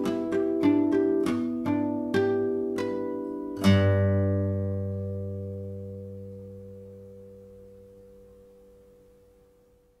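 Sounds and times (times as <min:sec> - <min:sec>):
classical guitar chord ringing: 0:00.0 - 0:10.0.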